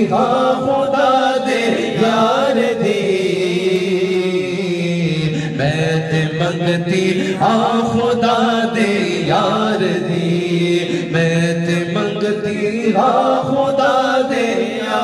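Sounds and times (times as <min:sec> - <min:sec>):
man singing into a microphone: 0:00.0 - 0:15.0.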